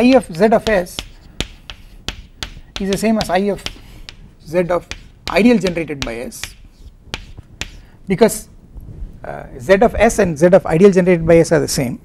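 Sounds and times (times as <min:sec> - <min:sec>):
chalk tapping on blackboard: 0:00.0 - 0:08.0.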